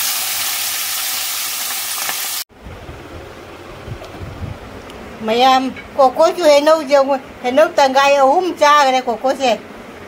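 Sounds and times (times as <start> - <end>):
fish frying in oil: 0.0 - 2.5.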